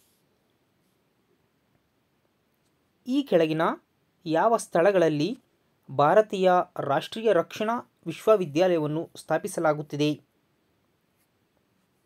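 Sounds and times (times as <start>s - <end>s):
person speaking: 3.0s - 10.3s.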